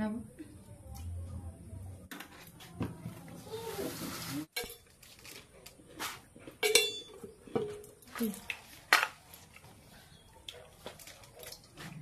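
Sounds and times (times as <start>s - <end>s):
metallic clinks of dishes: 6.6s - 7.2s.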